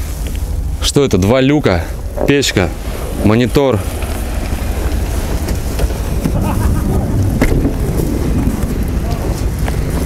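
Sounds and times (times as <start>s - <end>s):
wind buffeting microphone: 0.0s - 10.0s
microphone handling knocks: 5.2s - 8.7s.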